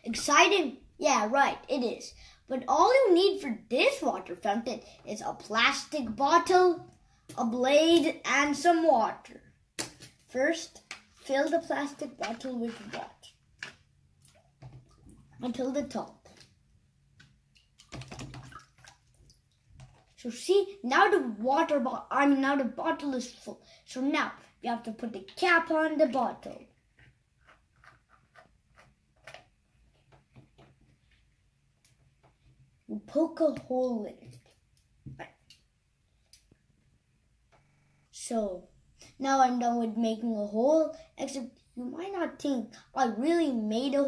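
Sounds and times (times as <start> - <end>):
water sloshing in plastic tub: 17.2 - 20.2
plastic bottle filling underwater: 17.7 - 20.1.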